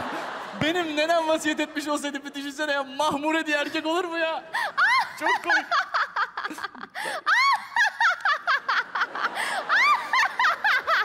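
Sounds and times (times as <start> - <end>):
woman laughing hard: 4.6 - 11.0.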